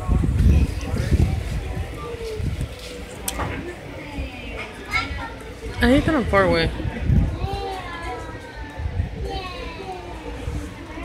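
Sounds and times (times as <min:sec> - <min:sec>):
murmur of chatter: 0:00.0 - 0:11.0
children's high-pitched voices: 0:04.0 - 0:05.8, 0:07.0 - 0:11.0.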